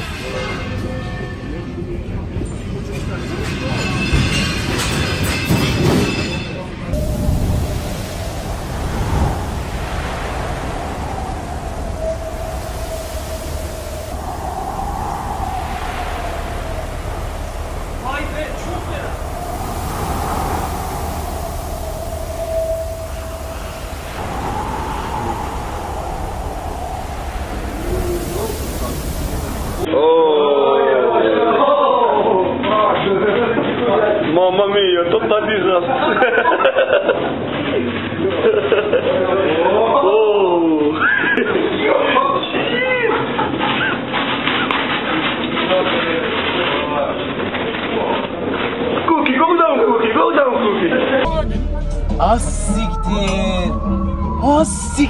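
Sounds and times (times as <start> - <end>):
storm wind and heavy seas: 4.0 - 30.0
waves breaking over ship: 6.9 - 30.0
thin whistling tone: 7.0 - 29.9.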